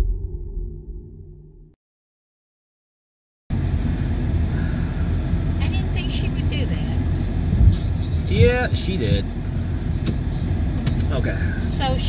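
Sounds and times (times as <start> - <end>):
low thump: 0.0 - 1.7
road rumble inside a car: 3.5 - 12.0.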